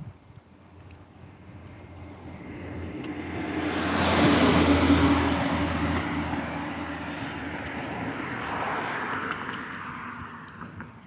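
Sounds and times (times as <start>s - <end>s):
car driving past: 1.8s - 10.6s.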